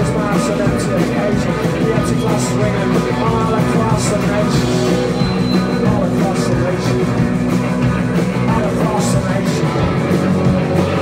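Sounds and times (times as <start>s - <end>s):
singer singing into microphone: 0.0s - 7.4s, 8.4s - 10.1s
distorted electric guitars: 0.0s - 11.0s
drums with cymbals: 0.0s - 11.0s.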